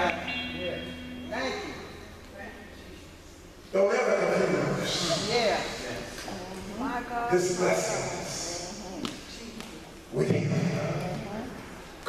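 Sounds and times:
held instrumental notes: 0:00.0 - 0:03.2.

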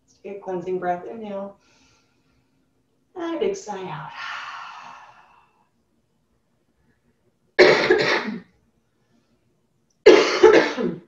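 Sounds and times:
woman coughing: 0:07.6 - 0:08.5, 0:10.1 - 0:11.0.

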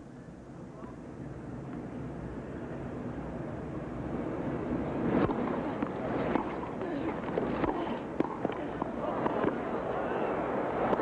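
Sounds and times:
crowd cheering: 0:06.3 - 0:11.0.

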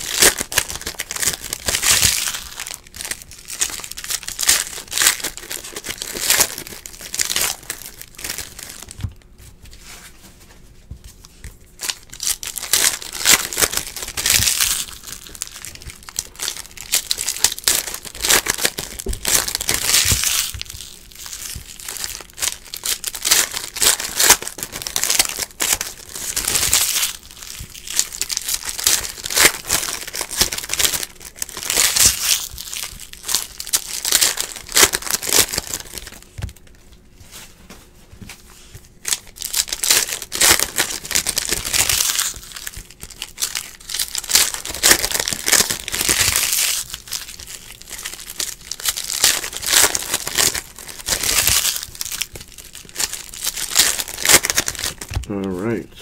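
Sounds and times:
foil wrappers crinkling: 0:00.0 - 0:10.1, 0:11.1 - 0:37.8, 0:38.6 - 0:55.8.

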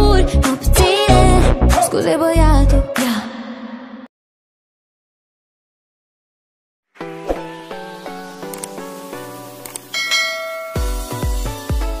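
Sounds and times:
notification bell chime: 0:10.0 - 0:11.0
electronic beat with kick drum: 0:10.8 - 0:12.0.

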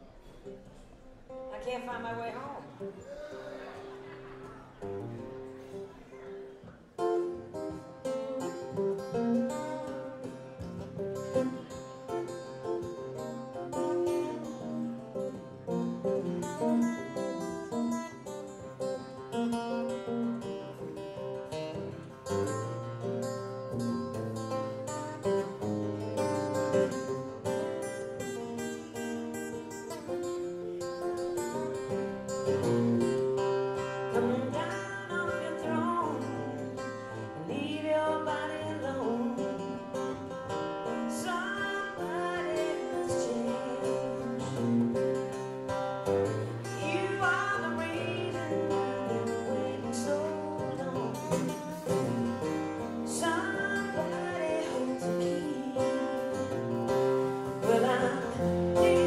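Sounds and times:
picked guitar: 0:00.0 - 0:59.0.

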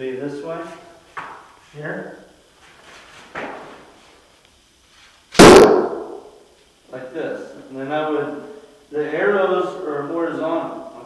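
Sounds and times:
bow shooting arrow crack: 0:05.4 - 0:06.3.

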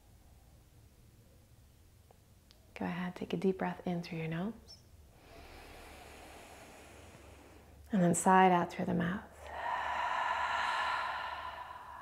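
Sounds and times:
woman sighing: 0:09.4 - 0:12.0.

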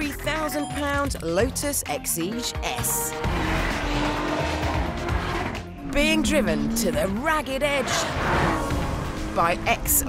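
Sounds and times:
background music: 0:00.0 - 0:10.0
sports car engine running hard: 0:08.1 - 0:10.0.

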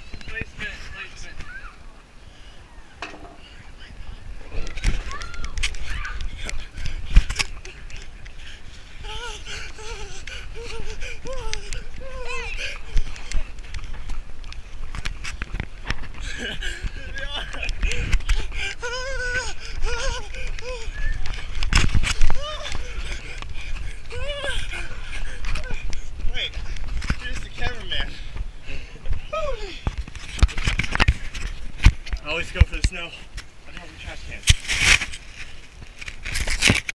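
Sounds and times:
camera being jostled thump: 0:21.1 - 0:22.8.

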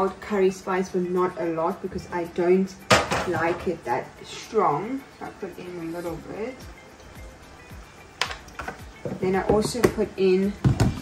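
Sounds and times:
soft background music with beat: 0:00.0 - 0:11.0.

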